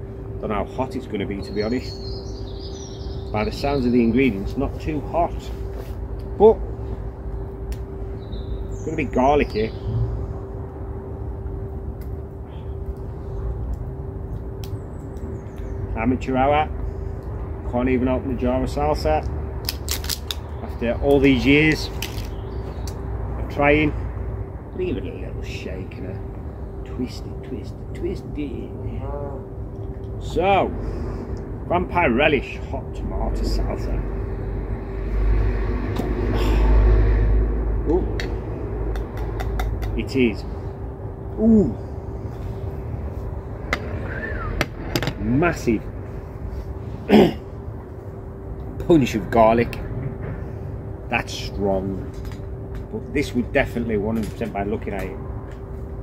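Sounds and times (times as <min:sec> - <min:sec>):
constant hum: 0:00.0 - 0:56.0
low outdoor rumble: 0:00.0 - 0:56.0.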